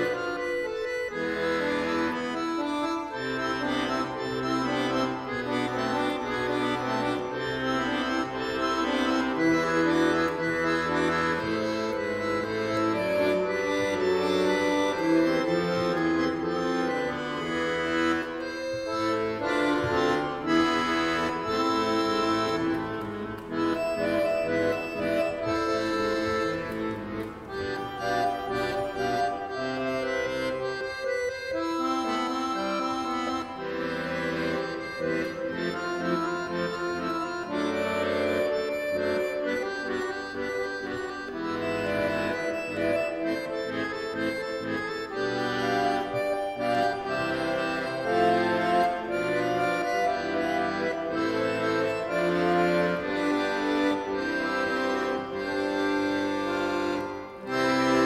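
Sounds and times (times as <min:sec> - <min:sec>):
accordion music: 0:00.0 - 0:58.0.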